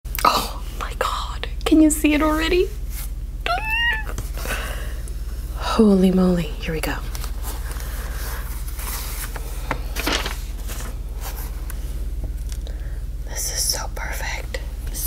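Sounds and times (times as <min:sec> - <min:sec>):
steady low hum: 0:00.1 - 0:15.0
tissue paper rustling: 0:07.1 - 0:11.6
notebook set down: 0:09.7 - 0:10.4.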